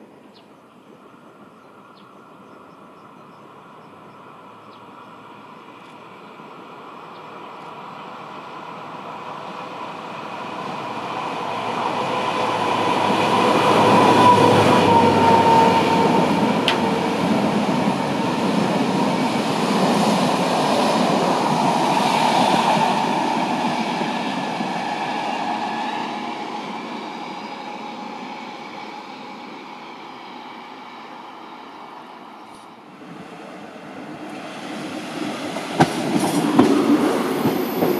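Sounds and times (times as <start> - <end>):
diesel railcar: 0.0 - 37.9
diesel locomotive engine running: 3.6 - 32.9
train coaches clickety-clack: 7.2 - 30.4, 32.4 - 37.9.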